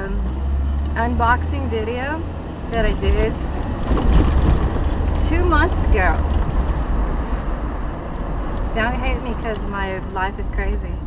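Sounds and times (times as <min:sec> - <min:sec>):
engine and road rumble: 0:00.0 - 0:11.0
tyre and wind noise: 0:02.3 - 0:08.8.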